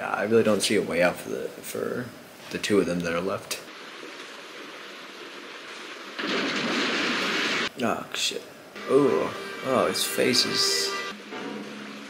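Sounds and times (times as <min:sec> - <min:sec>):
rushing river water: 0:09.4 - 0:12.0.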